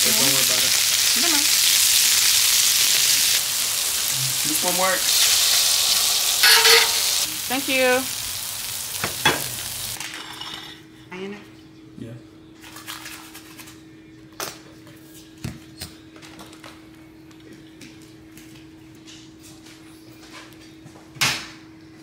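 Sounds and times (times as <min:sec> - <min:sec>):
grease sizzling on a griddle: 0:00.0 - 0:10.0.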